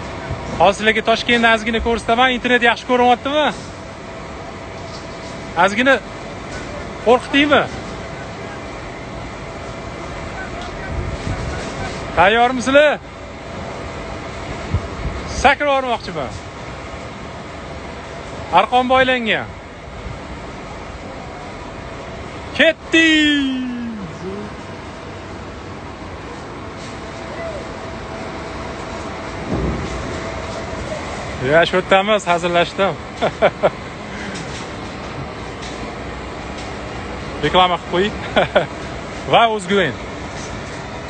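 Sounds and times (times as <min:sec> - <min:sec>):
wind rushing on microphone: 0:10.6 - 0:12.1, 0:14.6 - 0:15.5
outdoor rushing hiss: 0:22.0 - 0:40.9.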